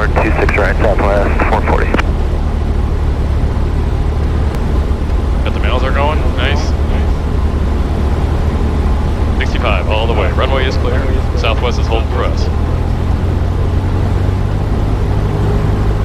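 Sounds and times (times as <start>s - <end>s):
small plane engine drone: 0.0s - 16.0s.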